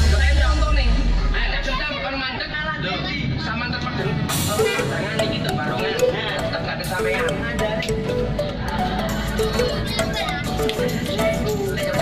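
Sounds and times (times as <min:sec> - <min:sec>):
bus engine running: 0:00.0 - 0:12.0
voices: 0:00.0 - 0:12.0.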